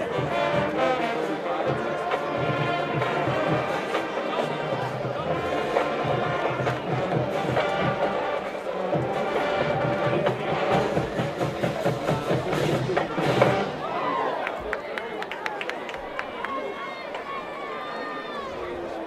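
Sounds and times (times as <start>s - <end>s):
band music with horns and drums: 0.0s - 14.3s
crowd voices: 0.0s - 19.0s.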